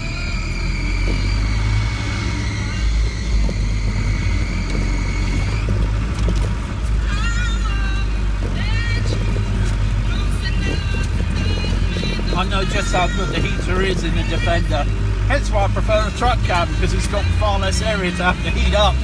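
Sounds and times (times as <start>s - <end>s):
engine and drivetrain drone: 0.0s - 19.0s.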